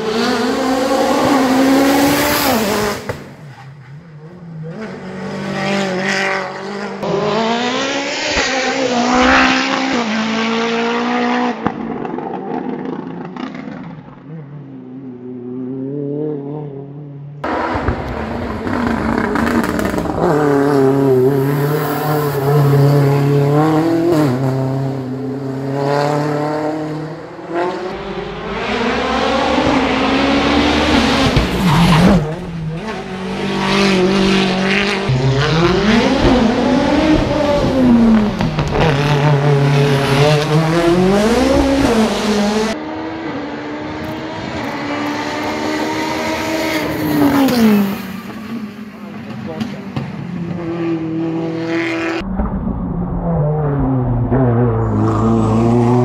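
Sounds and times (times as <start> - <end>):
car engine revving hard: 0.0 - 3.2, 4.7 - 11.7, 17.4 - 48.7.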